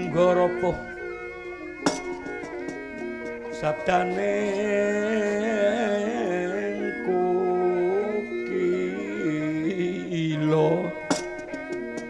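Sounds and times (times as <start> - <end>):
gamelan ringing metallic tones: 0.0 - 4.7
wavering melodic line: 0.0 - 12.0
sharp knock: 1.8 - 2.5, 11.1 - 11.6.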